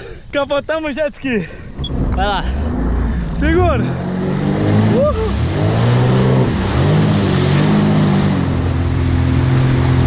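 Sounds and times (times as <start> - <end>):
jet ski engine running: 1.7 - 10.0
rush of spray and wind: 1.8 - 10.0.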